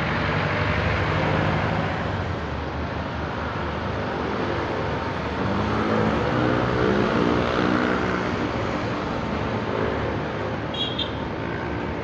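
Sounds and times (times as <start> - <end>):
road and tyre noise: 0.0 - 12.0.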